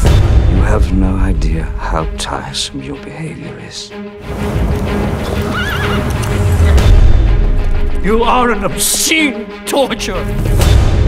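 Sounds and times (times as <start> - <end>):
background music: 0.0 - 11.0
horse neighing: 5.2 - 6.8.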